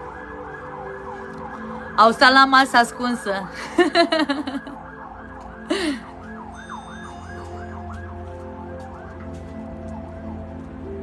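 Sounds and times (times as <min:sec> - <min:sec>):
distant emergency siren: 0:00.0 - 0:11.0.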